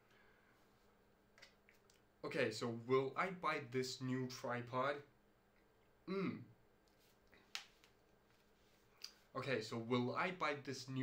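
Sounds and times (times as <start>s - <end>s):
man's short hmm: 6.1s - 6.5s.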